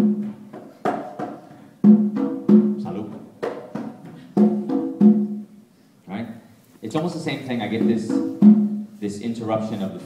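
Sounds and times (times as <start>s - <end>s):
conga drums struck by hand: 0.0s - 5.5s, 7.6s - 9.0s.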